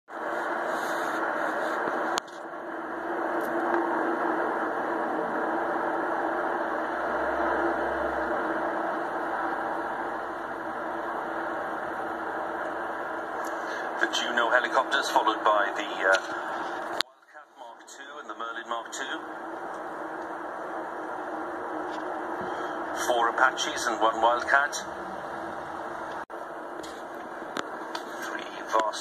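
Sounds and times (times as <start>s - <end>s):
helicopter rotor rumble: 0.3s - 29.0s.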